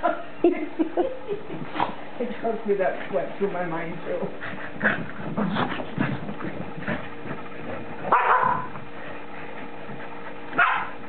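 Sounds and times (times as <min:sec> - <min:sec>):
dogs barking and yipping: 0:08.0 - 0:08.9, 0:10.1 - 0:11.0.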